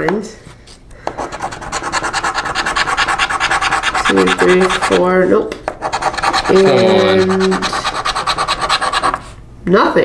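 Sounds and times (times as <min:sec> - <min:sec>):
scratching lottery ticket: 0:01.2 - 0:05.1, 0:05.8 - 0:09.4.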